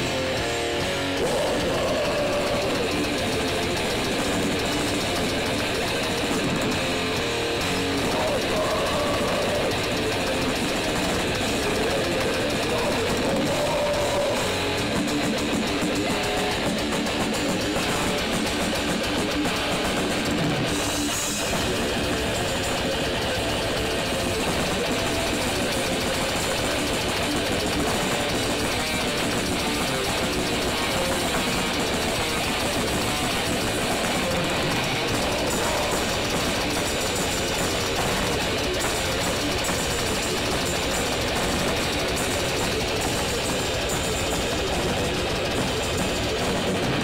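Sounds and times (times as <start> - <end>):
grindcore band playing live: 0.0 - 47.0.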